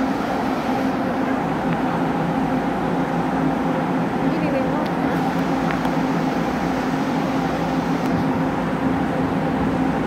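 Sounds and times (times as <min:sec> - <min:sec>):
diesel railcar engine running: 0:00.0 - 0:10.0.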